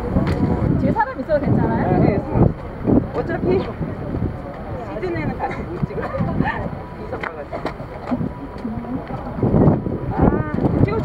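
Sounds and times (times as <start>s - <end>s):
people talking: 0.0s - 11.0s
wind rumble on microphone: 0.0s - 11.0s.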